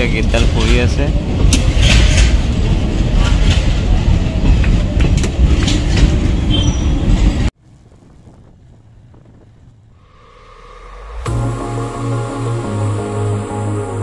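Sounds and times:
wheel clacks: 0.0 - 7.8
train wheels rumbling on rail: 0.0 - 9.9
wheel squeals: 3.2 - 7.5.

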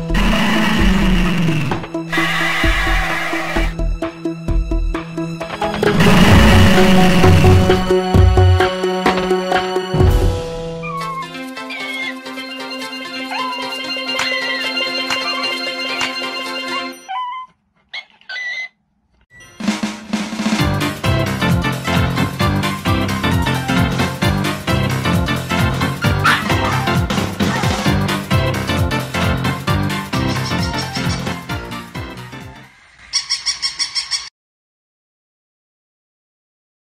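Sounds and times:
toy dog electronic yips: 2.1 - 3.7, 10.8 - 12.2, 13.3 - 16.0, 16.9 - 19.6, 33.1 - 34.3
dog whimpering: 10.8 - 12.2, 13.2 - 15.4, 17.0 - 18.8, 26.0 - 27.9.

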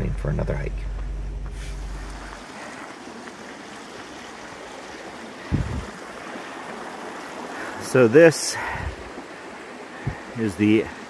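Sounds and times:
low rumble: 0.0 - 2.4, 5.5 - 5.9
creek water running: 0.0 - 11.0.

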